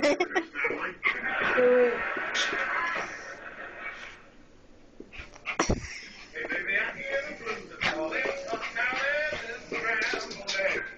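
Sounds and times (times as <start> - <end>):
television speech: 0.0 - 4.3, 5.3 - 10.9.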